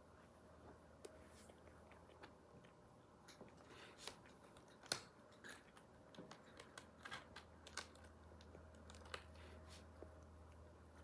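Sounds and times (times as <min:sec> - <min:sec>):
person chewing pizza: 0:01.4 - 0:11.0.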